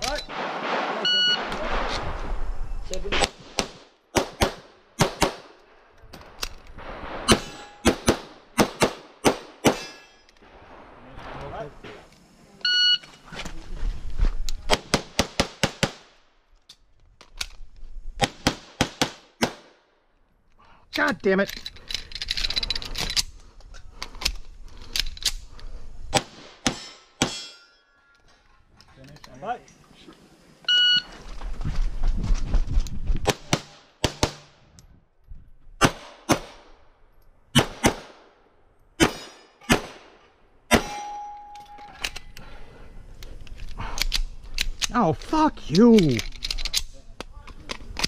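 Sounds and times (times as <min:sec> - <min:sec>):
pistol shots: 0:03.2 - 0:05.5, 0:07.1 - 0:09.9, 0:35.8 - 0:36.7, 0:37.5 - 0:38.3, 0:39.0 - 0:41.1.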